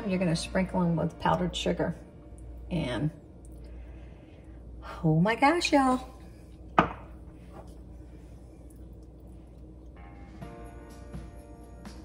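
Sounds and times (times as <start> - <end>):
jar knocking on hard surface: 6.8 - 7.1.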